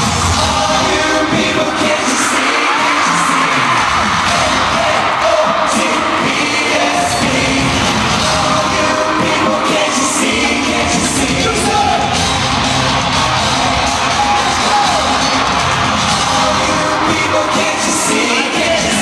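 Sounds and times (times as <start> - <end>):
crowd cheering and shouting: 0.0 - 19.0
live pop music with singing: 0.0 - 19.0.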